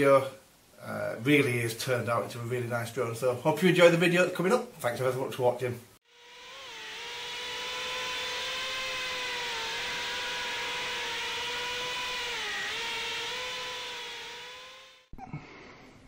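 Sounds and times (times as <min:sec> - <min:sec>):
quadcopter motors whining: 0:06.1 - 0:15.1.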